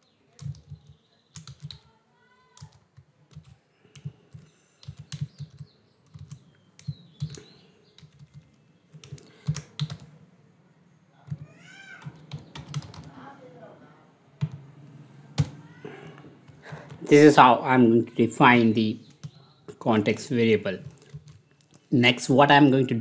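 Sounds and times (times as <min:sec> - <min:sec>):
keyboard typing: 0:00.3 - 0:10.2, 0:11.2 - 0:13.2, 0:14.4 - 0:14.7, 0:15.3 - 0:17.1, 0:19.0 - 0:21.9.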